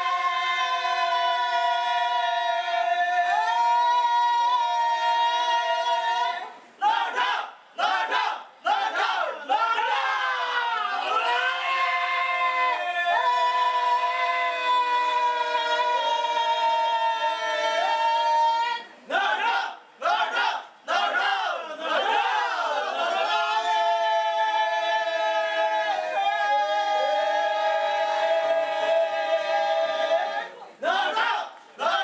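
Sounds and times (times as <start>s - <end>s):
group of voices shouting in unison: 0.0s - 32.0s.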